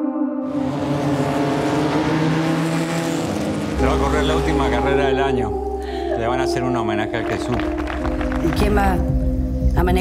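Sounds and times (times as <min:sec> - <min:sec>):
race car engine: 0:00.5 - 0:05.6.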